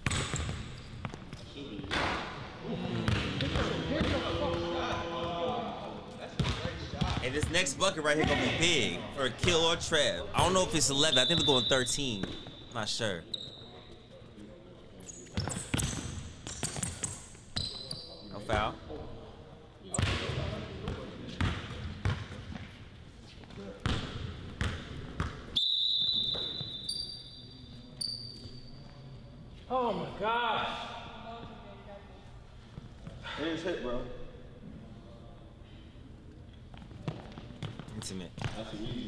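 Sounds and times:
sneakers squeaking on floor: 0:00.0 - 0:02.0, 0:10.4 - 0:14.2, 0:15.0 - 0:18.6, 0:19.9 - 0:29.0.

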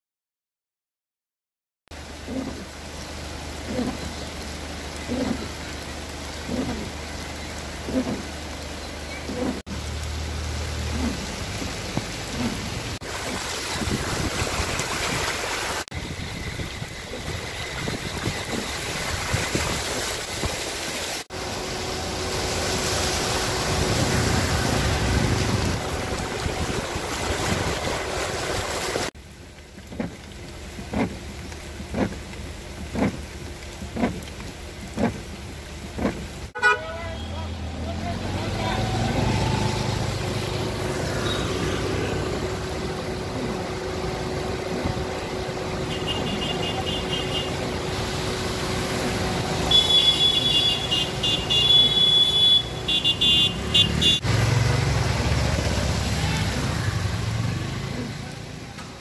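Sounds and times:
rain: 0:01.9 - 0:59.0
vehicles driving through water: 0:01.9 - 0:59.0
short horn toots: 0:49.7 - 0:54.2.

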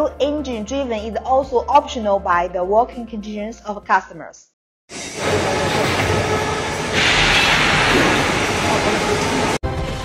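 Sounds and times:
loud steady machine noise: 0:05.0 - 0:09.6.

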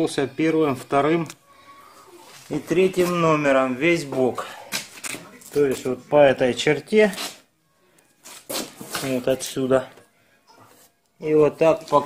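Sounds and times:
man speaking: 0:00.0 - 0:01.4, 0:02.4 - 0:04.7, 0:05.3 - 0:07.3, 0:08.9 - 0:10.0, 0:11.2 - 0:12.0.

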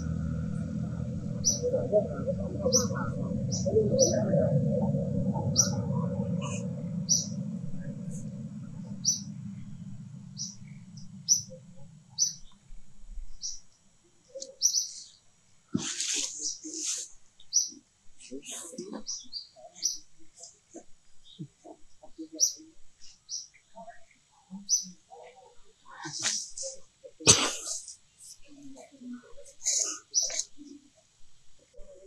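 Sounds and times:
low rumble: 0:00.0 - 0:13.7
birds chirping: 0:00.0 - 0:30.8
shrill bird calls: 0:01.3 - 0:01.7, 0:06.4 - 0:07.4.

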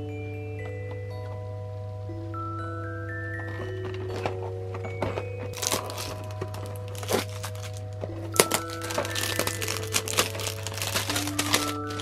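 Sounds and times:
soft music with bell-like notes: 0:00.0 - 0:12.0
plastic wrap crinkling: 0:03.5 - 0:12.0.

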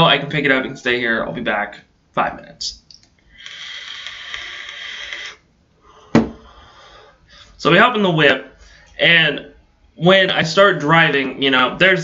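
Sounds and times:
vape hissing: 0:03.3 - 0:06.0.

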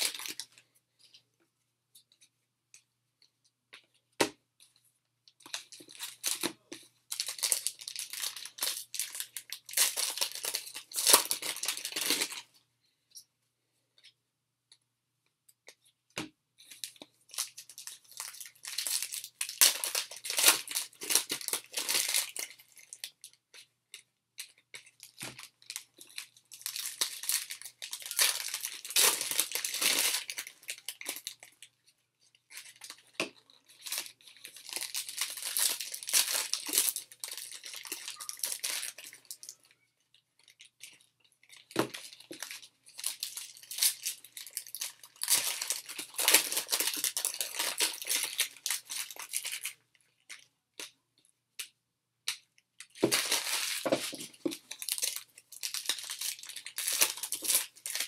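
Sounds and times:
foil wrapper tearing and crinkling: 0:07.1 - 0:12.4, 0:17.4 - 0:23.1, 0:25.1 - 0:31.4, 0:33.8 - 0:39.4, 0:41.9 - 0:49.8, 0:53.0 - 0:58.0.

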